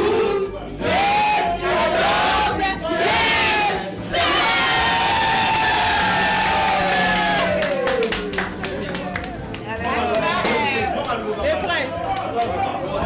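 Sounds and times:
group singing a birthday song: 0.0s - 6.3s
people clapping: 5.9s - 13.0s.

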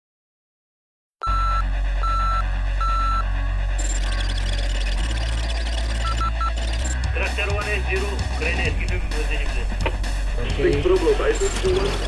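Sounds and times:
low electronic drone: 1.5s - 7.2s
quick beeps: 3.8s - 7.1s.

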